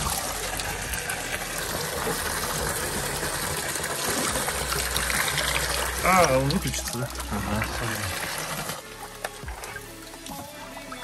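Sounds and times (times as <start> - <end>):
water pouring into bucket: 0.0 - 11.0.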